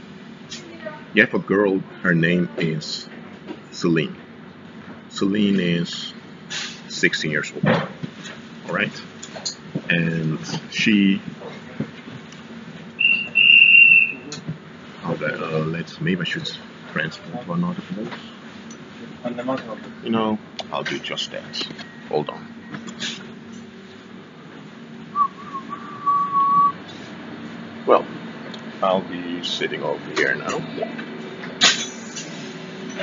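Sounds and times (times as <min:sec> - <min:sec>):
high-pitched whistle-like tone: 0:13.0 - 0:14.3, 0:25.2 - 0:26.8
train carriage hum: 0:22.8 - 0:27.6.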